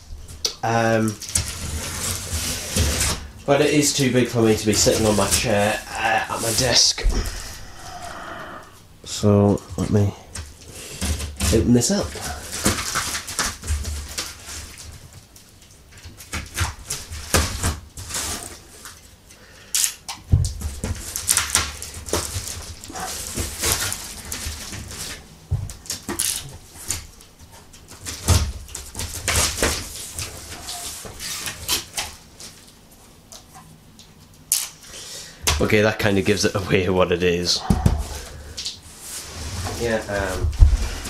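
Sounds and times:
packing tape ripping: 1.2 - 3.3, 19.7 - 20.0, 20.9 - 25.2, 25.8 - 27.1
cardboard flaps scraping: 1.2 - 7.6, 37.6 - 41.0.

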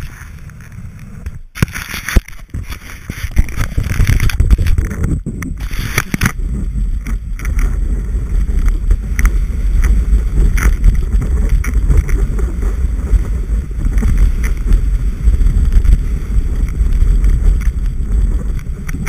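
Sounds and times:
skis hissing through snow: 0.0 - 4.4, 5.6 - 6.7, 7.6 - 17.5
wind buffeting microphone: 0.0 - 19.0.

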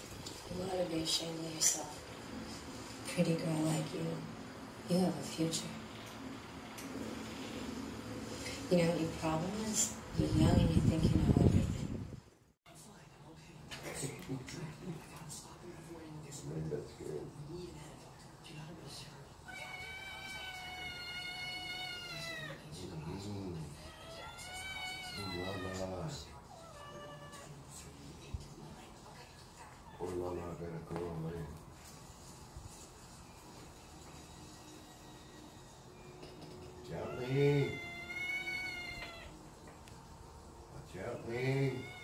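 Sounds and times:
cat meowing: 19.5 - 22.7, 23.8 - 27.5, 37.0 - 39.4, 41.6 - 42.0.

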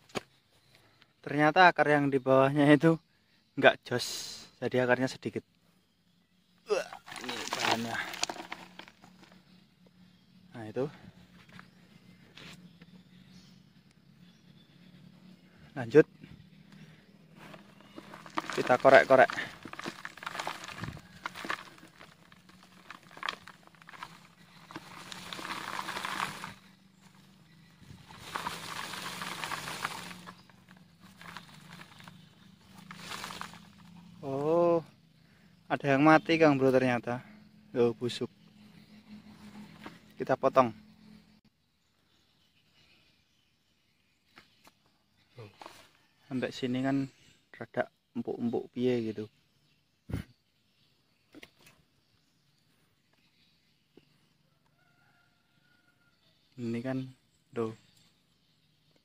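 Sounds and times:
soil crumbling into plastic tub: 6.7 - 9.5, 17.4 - 34.1
crinkling handling noise: 6.7 - 9.6, 16.7 - 34.1.

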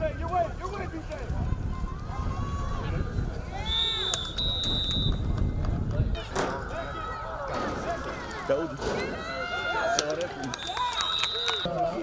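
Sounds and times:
wind rumble on microphone: 0.0 - 8.1
referee's whistle blasts: 3.6 - 5.3, 10.6 - 11.7.

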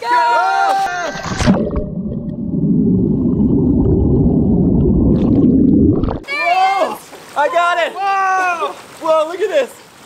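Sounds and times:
muffled underwater bubbles rushing: 1.1 - 6.2.

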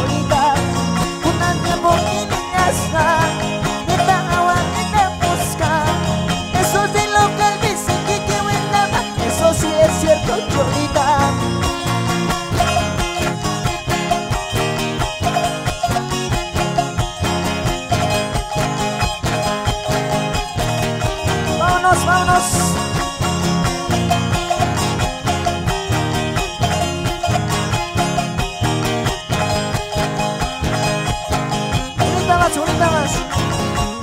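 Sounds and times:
live band instrumental: 0.0 - 34.0.

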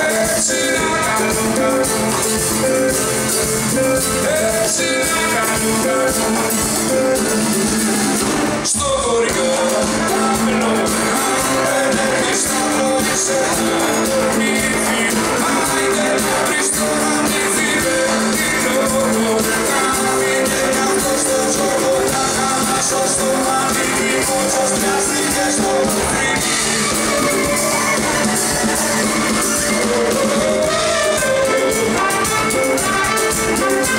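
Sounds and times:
acoustic guitar: 0.0 - 33.9
band accompaniment: 0.0 - 33.9
man singing: 0.0 - 33.9.

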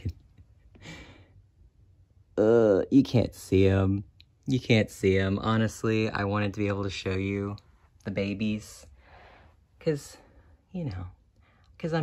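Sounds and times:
person exhaling breathily: 0.8 - 1.3.

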